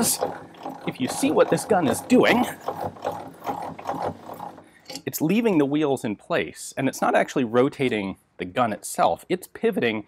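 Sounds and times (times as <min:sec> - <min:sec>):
handwheel cranking mechanical whirring: 0:00.0 - 0:05.0.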